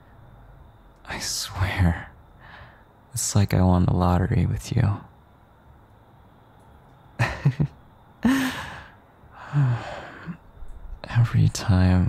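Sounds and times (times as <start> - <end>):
man chuckling and sighing: 7.2 - 10.4.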